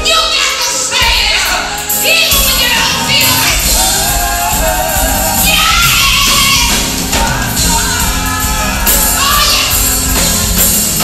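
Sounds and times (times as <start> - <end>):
female vocal group singing gospel: 0.1 - 10.4
electric bass and drums: 3.5 - 11.0.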